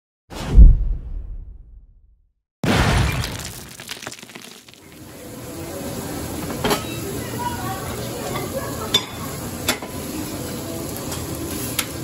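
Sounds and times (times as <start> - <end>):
deep boom: 0.3 - 3.6
glass breaking: 2.6 - 4.9.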